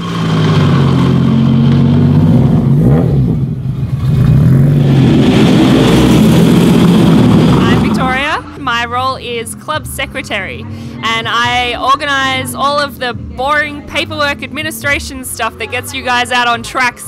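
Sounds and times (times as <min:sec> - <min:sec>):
car engines running at low revs: 0:00.0 - 0:08.6.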